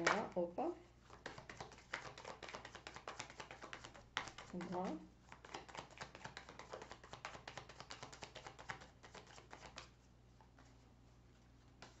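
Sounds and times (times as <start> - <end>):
cards being shuffled: 1.1 - 9.9.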